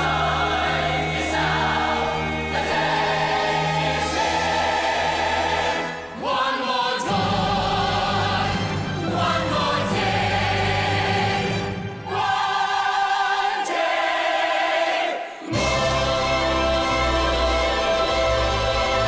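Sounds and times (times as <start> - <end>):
orchestra: 0.0 - 12.8, 15.4 - 19.0
chorus singing held notes: 0.0 - 19.0.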